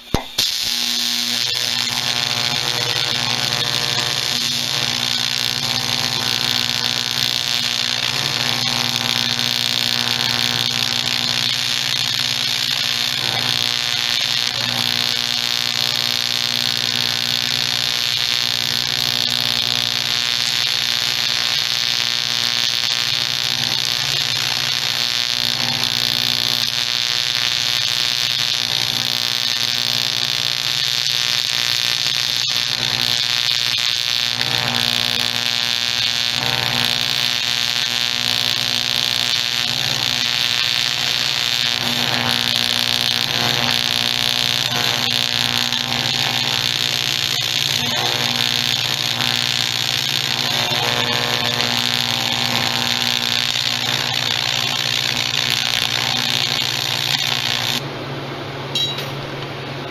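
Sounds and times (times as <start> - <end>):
welding arc buzzing: 0.0 - 57.9.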